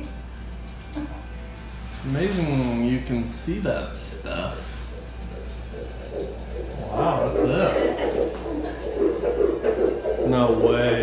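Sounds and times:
pulsing heartbeat whoosh: 0:03.8 - 0:11.0.

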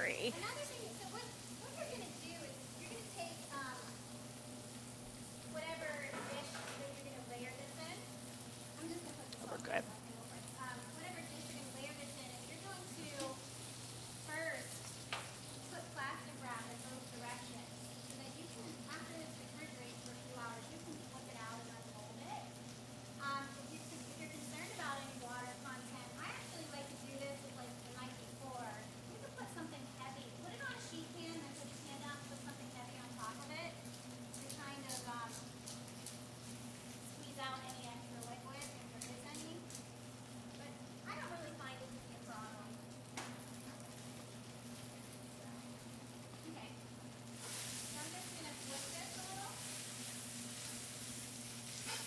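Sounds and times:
spinach sizzling in a pan: 0:00.0 - 0:52.0.

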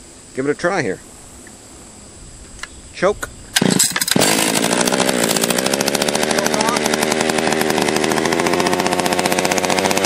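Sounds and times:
steady hiss: 0:00.0 - 0:04.2
small click: 0:02.4 - 0:03.3.

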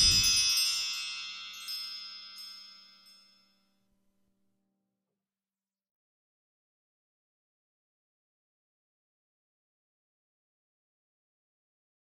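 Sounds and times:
light sparkling strikes: 0:00.0 - 0:03.6
shimmering chime tones: 0:00.0 - 0:03.6.

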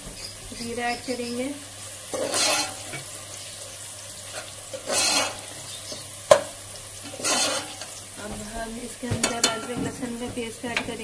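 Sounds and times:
onions sizzling in hot oil: 0:00.0 - 0:11.0
spatula swishing through onions: 0:02.1 - 0:03.0, 0:04.3 - 0:05.8, 0:07.0 - 0:08.0
spatula knocking against pot: 0:06.3 - 0:06.6, 0:07.3 - 0:11.0.

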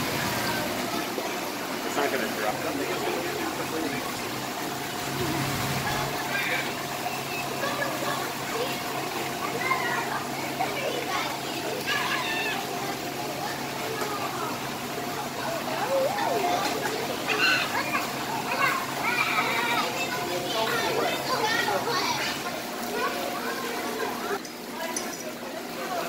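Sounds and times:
steady hum: 0:00.0 - 0:24.4
running splashing water: 0:00.0 - 0:26.0
children chattering and calling out: 0:00.2 - 0:26.0.

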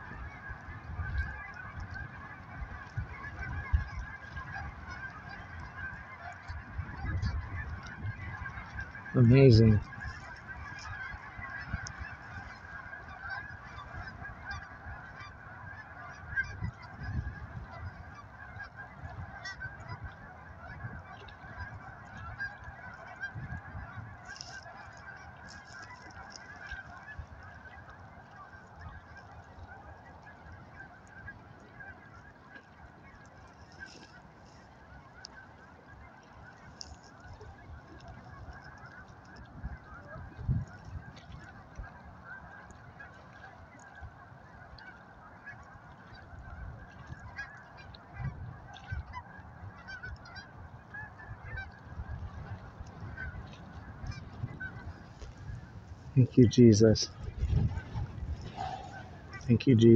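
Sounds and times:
geese honking in flight: 0:00.0 - 0:59.9.

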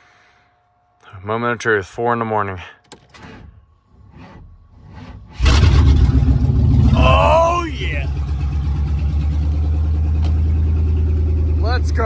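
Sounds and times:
truck engine idling: 0:02.9 - 0:12.0.

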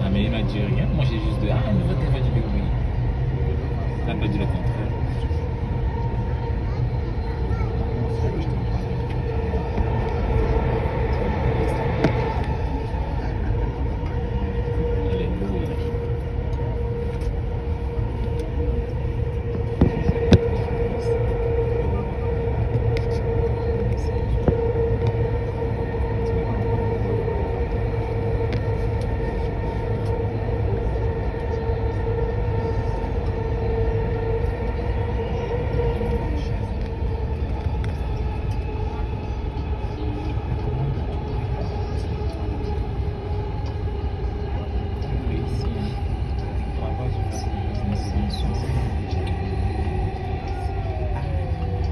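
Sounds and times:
train rumble inside carriage: 0:00.0 - 0:51.9
train whine: 0:00.0 - 0:51.9.

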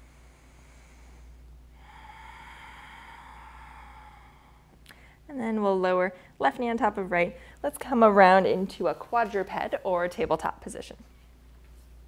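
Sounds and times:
person breathing out: 0:00.0 - 0:05.2
faint low room hum: 0:00.0 - 0:12.0.

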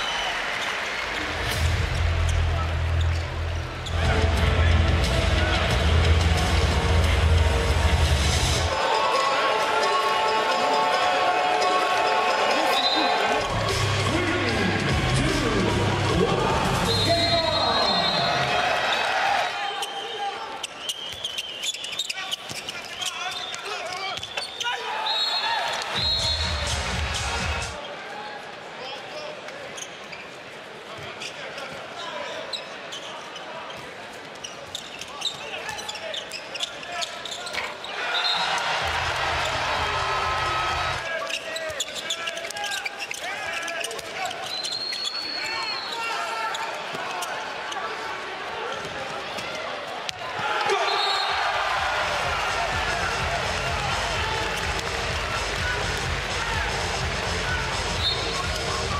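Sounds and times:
crowd and player voices: 0:00.0 - 0:58.9
referee whistle blasts: 0:16.9 - 0:18.4, 0:22.9 - 0:26.7, 0:50.8 - 0:51.4, 0:58.0 - 0:58.5.

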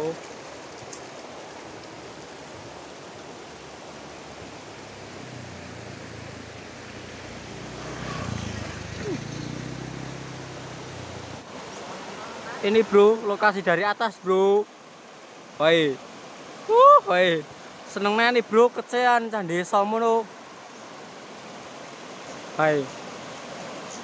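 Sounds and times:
rocky river rushing: 0:00.0 - 0:24.0.

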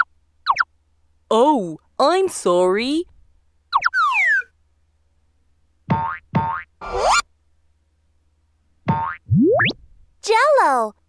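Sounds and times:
short pitched blips: 0:08.9 - 0:09.9.

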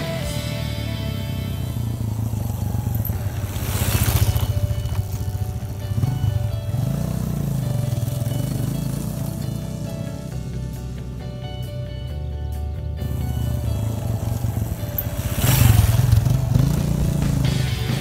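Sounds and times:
background music: 0:00.0 - 0:18.0
motorcycle engine revving: 0:00.0 - 0:18.0.

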